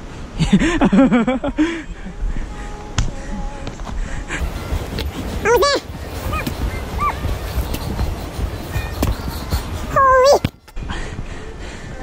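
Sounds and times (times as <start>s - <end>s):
footfalls on trail: 3.8s - 9.7s
high-pitched vocal cry: 5.4s - 7.3s.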